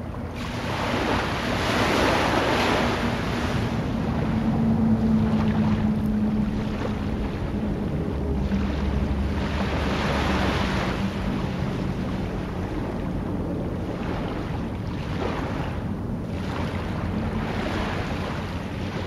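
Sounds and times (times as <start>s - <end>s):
low steady hum: 0.0s - 19.0s
sea surf rushing: 0.0s - 19.0s.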